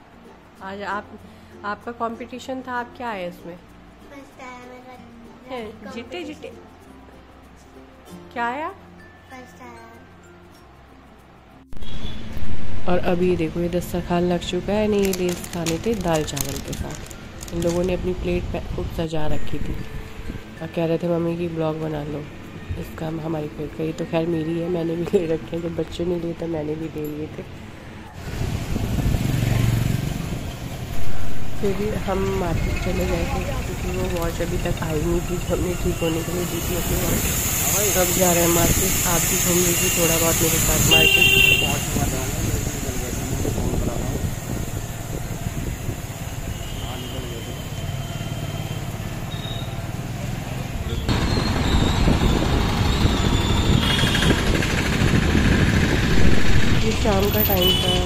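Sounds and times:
street traffic: 0:00.0 - 0:58.0
road and wind noise: 0:10.2 - 0:58.0
vehicle engine humming: 0:28.2 - 0:58.0.

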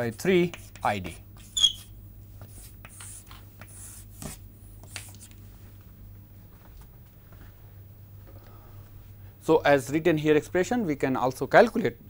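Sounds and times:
chalk scratching on blackboard: 0:00.4 - 0:05.3
high-pitched chalk squeak: 0:01.4 - 0:01.9.

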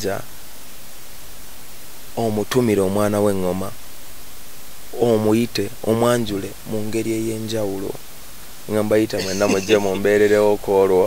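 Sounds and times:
background hiss: 0:00.0 - 0:11.0
person speaking: 0:08.7 - 0:11.0.

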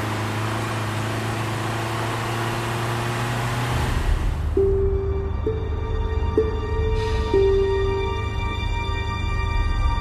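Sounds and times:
car road noise: 0:00.0 - 0:10.0
music tones: 0:04.5 - 0:10.0.

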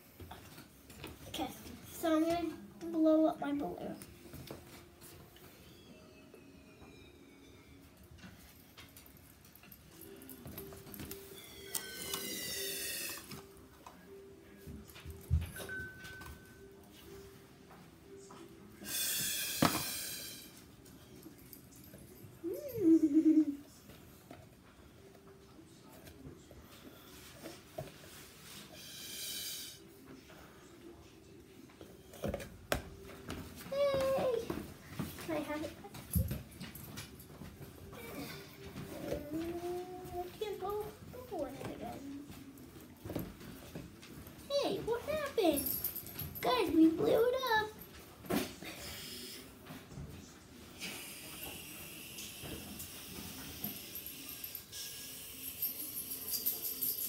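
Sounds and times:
breathy puffs of air: 0:18.8 - 0:20.6.

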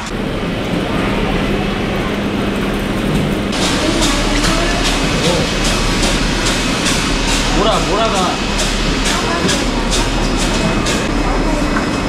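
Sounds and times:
low hum: 0:00.0 - 0:12.0
faint voices: 0:00.5 - 0:12.0
noisy hiss: 0:03.5 - 0:12.0.

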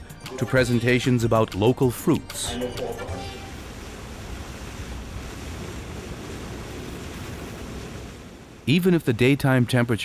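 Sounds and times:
flowing river water: 0:02.4 - 0:08.9
wind: 0:02.6 - 0:10.0.

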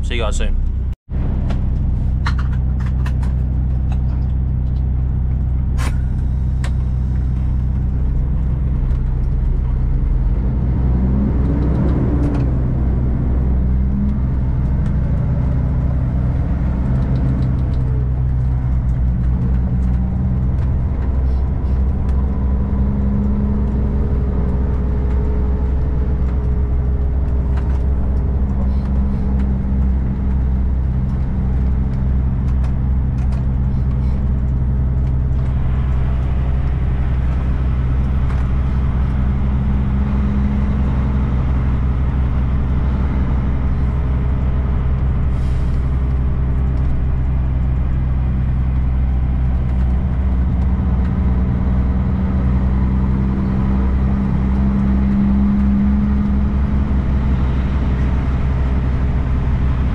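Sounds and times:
diesel truck engine running: 0:00.0 - 0:59.9.

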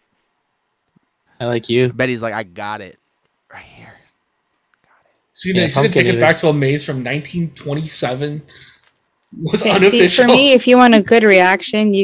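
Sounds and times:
person whispering: 0:03.5 - 0:04.1.

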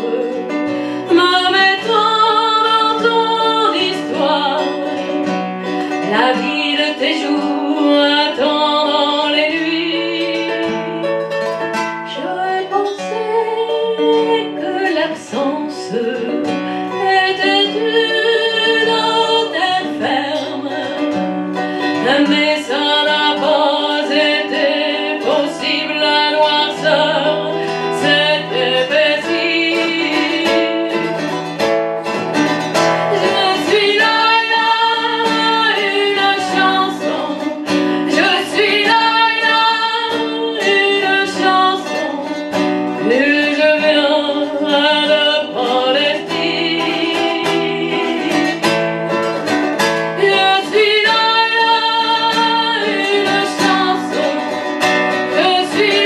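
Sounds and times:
woman singing: 0:00.0 - 0:31.6, 0:33.1 - 0:49.6, 0:50.2 - 0:56.0
plucked acoustic guitar: 0:00.0 - 0:56.0.

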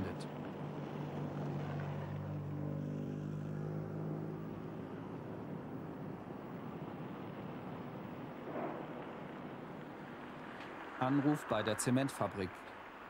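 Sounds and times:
engine humming: 0:00.0 - 0:11.6.

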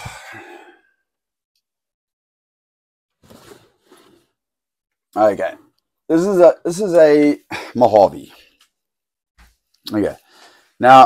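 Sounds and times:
man groaning and sighing: 0:00.0 - 0:00.8.

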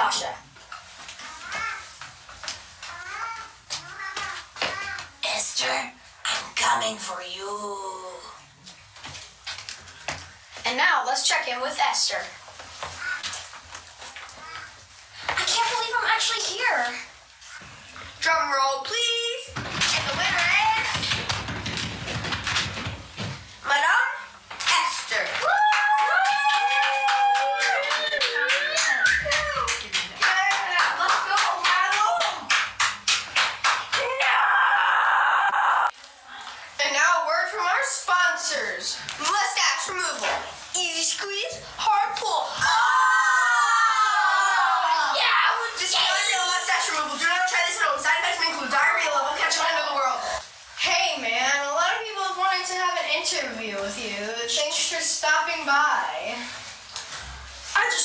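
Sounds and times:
person speaking: 0:05.2 - 0:08.4
hands clapping: 0:24.6 - 0:34.3
children cheering and whooping: 0:25.4 - 0:29.8, 0:34.0 - 0:35.9, 0:42.6 - 0:45.6.

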